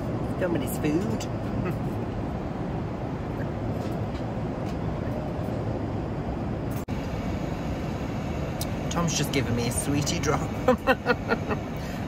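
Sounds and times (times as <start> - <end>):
airliner cabin rumble: 0.0 - 12.0.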